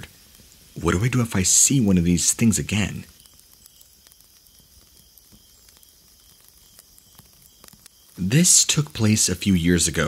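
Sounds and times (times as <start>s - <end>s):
faint steady hiss: 0.0s - 10.0s
soft crackles and ticks: 0.0s - 10.0s.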